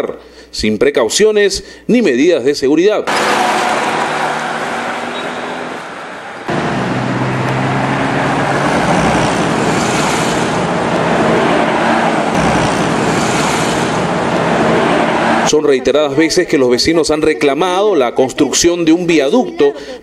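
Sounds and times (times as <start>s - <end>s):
highway traffic noise: 3.1s - 15.9s.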